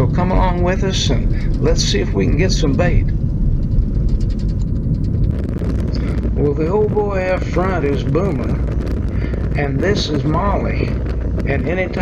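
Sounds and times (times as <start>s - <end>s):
car driving on rough road: 0.0s - 12.0s.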